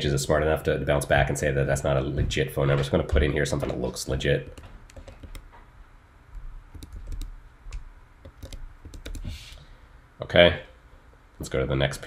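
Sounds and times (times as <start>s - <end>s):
keyboard key clicks: 6.7s - 9.2s.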